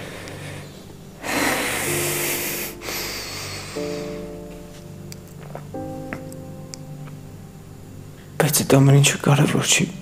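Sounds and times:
dramatic underscore music: 0:00.0 - 0:10.0.

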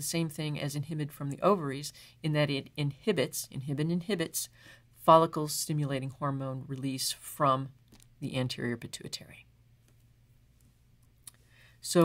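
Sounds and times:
person speaking: 0:00.0 - 0:09.5
soft breath: 0:04.5 - 0:05.0, 0:11.4 - 0:11.8.

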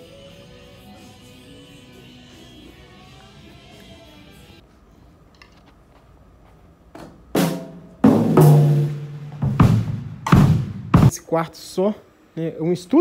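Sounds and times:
loud drum hits: 0:07.4 - 0:11.1.

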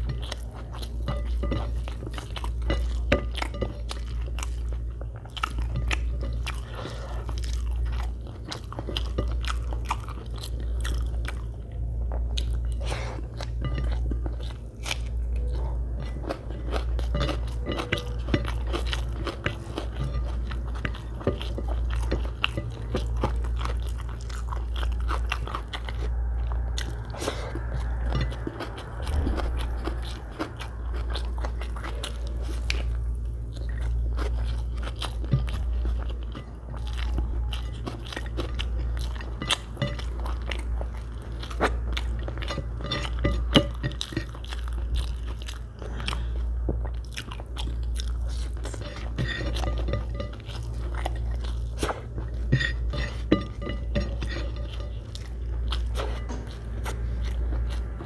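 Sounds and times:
low hum: 0:00.0 - 0:58.0
person chewing food: 0:00.0 - 0:58.0.

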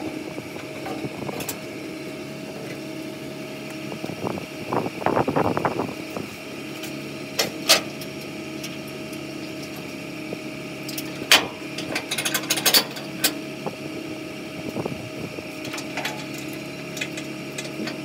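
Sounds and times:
diesel pickup idling: 0:00.0 - 0:18.0.

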